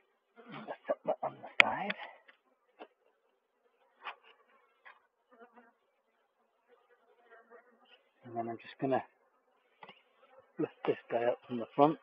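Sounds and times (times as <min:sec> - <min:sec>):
honeybees buzzing: 0:02.2 - 0:12.0.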